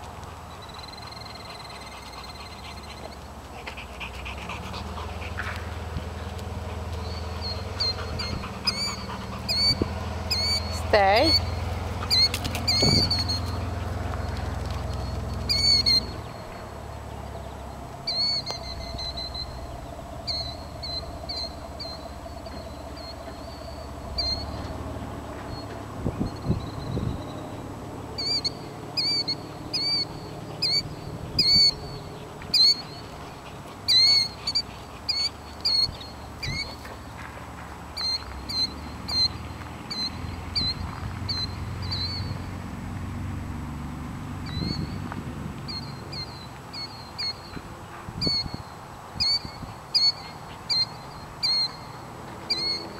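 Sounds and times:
bird high-pitched calls: 0:00.5 - 0:03.3, 0:06.9 - 0:36.9, 0:38.0 - 0:42.4, 0:44.4 - 0:45.0, 0:45.7 - 0:47.6, 0:48.2 - 0:52.9.

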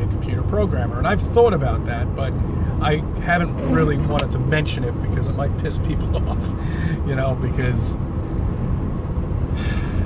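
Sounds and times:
car cabin rumble: 0:02.8 - 0:06.6.

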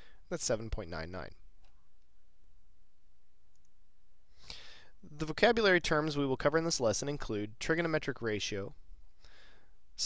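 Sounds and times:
faint low hum and hiss: 0:00.0 - 0:10.0.

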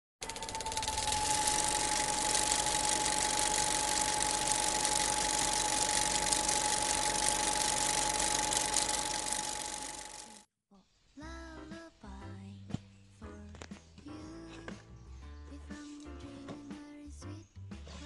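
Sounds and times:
fan running: 0:00.2 - 0:10.4
mid-pitched whine: 0:00.2 - 0:10.4.

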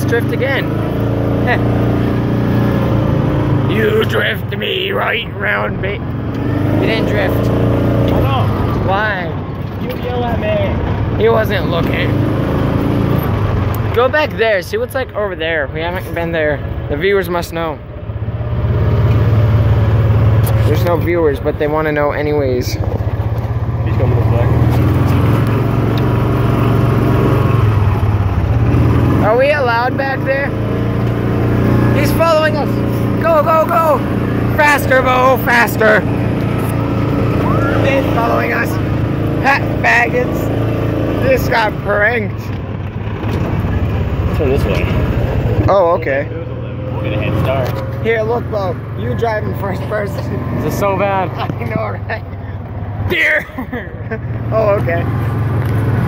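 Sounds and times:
vehicle engine running: 0:00.0 - 0:56.0
person shouting: 0:32.1 - 0:34.2.

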